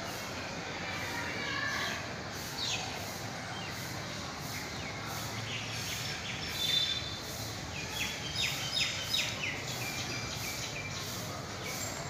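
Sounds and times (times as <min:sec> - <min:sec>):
outdoor background hiss: 0:00.0 - 0:12.0
birds chirping: 0:04.4 - 0:12.0.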